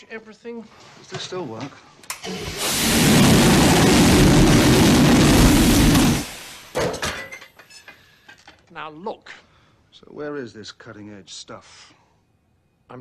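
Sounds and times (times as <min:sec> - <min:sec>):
jetpack rocket thrust: 0:02.2 - 0:06.8.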